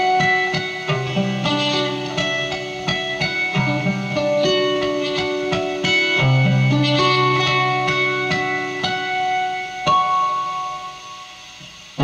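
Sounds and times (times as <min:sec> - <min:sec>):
acoustic guitar note ringing: 0:00.0 - 0:12.0.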